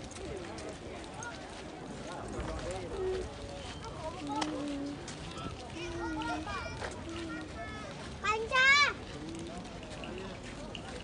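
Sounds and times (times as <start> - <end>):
footsteps on gravel path: 0.0 - 11.0
indistinct chatter: 0.0 - 11.0.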